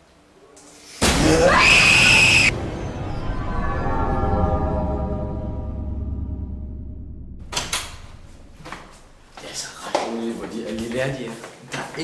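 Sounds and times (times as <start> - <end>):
person screaming: 1.1 - 2.5.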